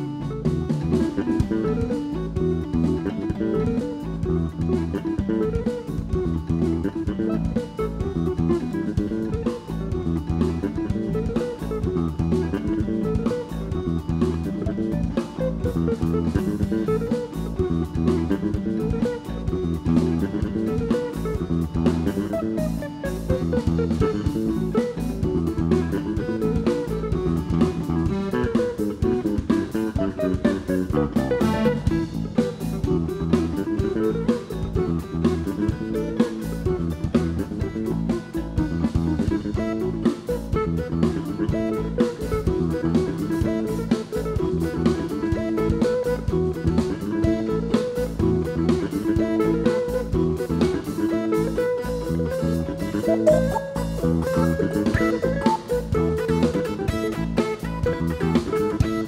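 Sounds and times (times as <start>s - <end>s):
bass line: 0.0s - 59.0s
drum kit: 0.0s - 59.0s
electric guitar run: 0.0s - 59.0s.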